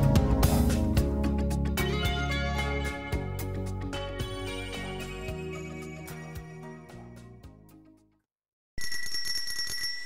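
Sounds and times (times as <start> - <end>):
music: 0.0 - 8.3
small bell ringing rapidly: 8.8 - 10.0.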